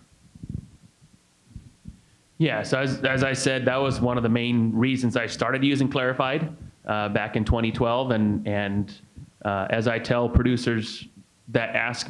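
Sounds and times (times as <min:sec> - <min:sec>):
microphone handling thumps: 0:00.0 - 0:02.0, 0:06.5 - 0:06.8.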